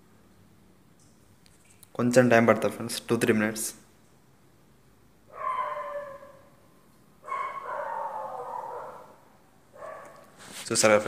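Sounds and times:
animal high-pitched whining calls: 5.3s - 6.5s.

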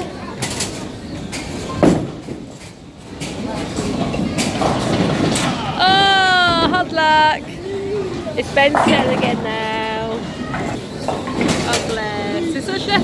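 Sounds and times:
bowling ball rolling rumble: 8.1s - 11.7s.

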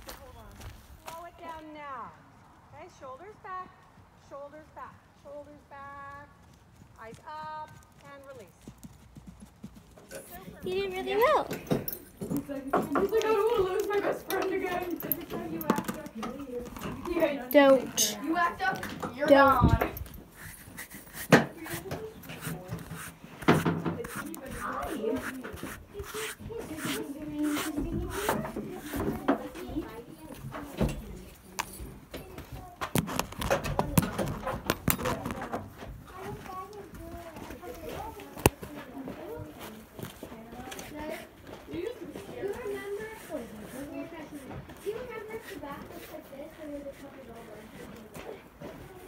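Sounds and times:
indistinct talking: 10.2s - 20.1s, 20.8s - 32.9s.

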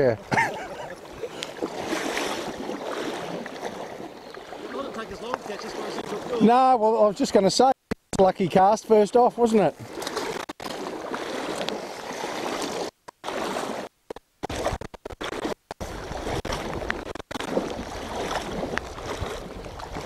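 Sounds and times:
river water rushing: 0.0s - 6.7s, 9.4s - 13.9s.

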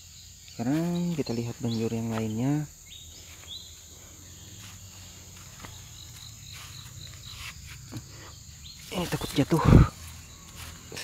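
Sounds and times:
insects chirping: 0.0s - 11.0s
footsteps on dry leaves: 0.6s - 11.0s.

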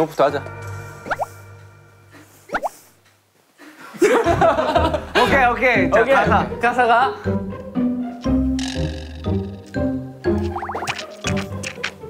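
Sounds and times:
background music: 0.0s - 2.5s, 4.0s - 12.0s
rising cartoon bloop effects: 1.0s - 1.4s, 2.5s - 2.9s, 10.4s - 11.0s.

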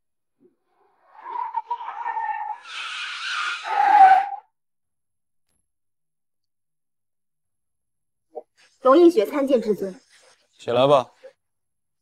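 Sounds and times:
car tyres squealing in a skid: 0.9s - 4.5s.

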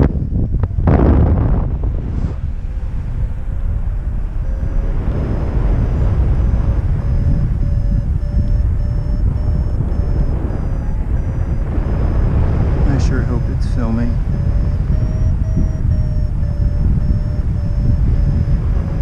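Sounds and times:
variometer beeping: 0.0s - 1.6s, 3.8s - 19.0s
wind rushing over microphone: 0.0s - 19.0s.

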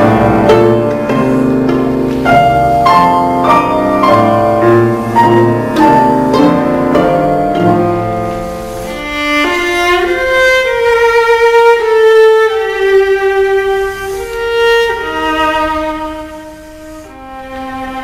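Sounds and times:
piano accompaniment: 0.0s - 18.0s
viola playing long notes: 0.0s - 18.0s.

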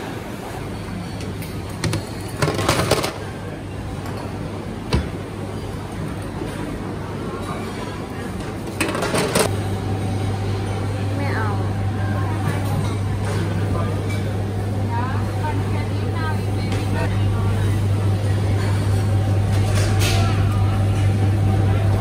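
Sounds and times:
loud low hum: 9.1s - 22.0s
faint voices of shoppers: 10.7s - 22.0s.

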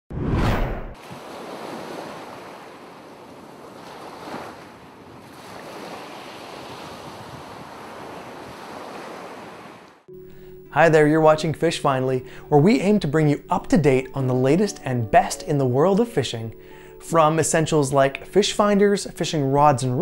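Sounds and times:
ocean waves washing: 0.6s - 20.0s.

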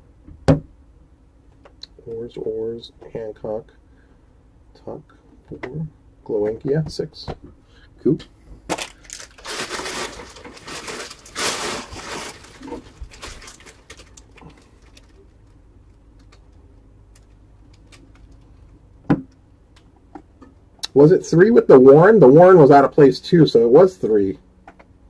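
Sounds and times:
packaging crinkling and rustling: 8.7s - 15.6s, 16.2s - 18.6s.

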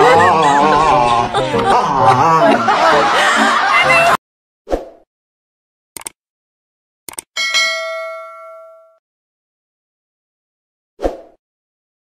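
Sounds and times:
notification bell ding: 7.4s - 9.0s.

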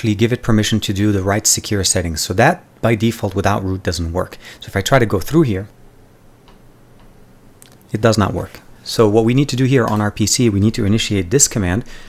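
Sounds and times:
low room hiss: 0.0s - 12.0s
faint clicks: 6.4s - 7.9s.

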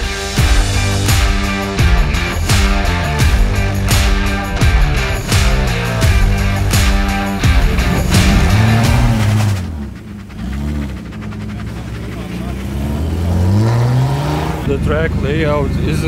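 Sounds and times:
rock music: 0.0s - 10.0s
car engine revving: 0.0s - 16.0s.

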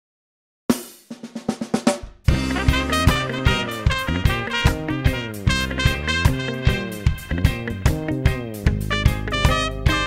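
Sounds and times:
snare drum fill: 0.7s - 8.1s.

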